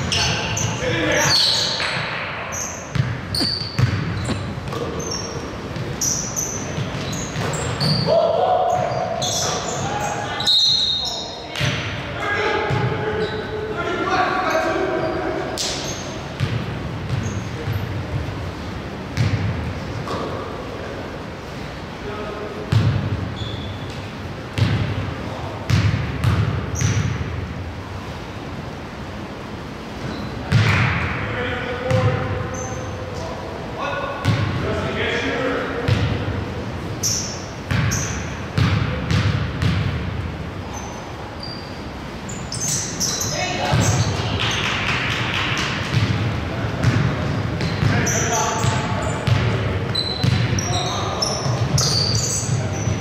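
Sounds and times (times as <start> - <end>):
basketball bouncing on hardwood floor: 2.9 - 4.8, 45.3 - 46.2, 50.2 - 50.5.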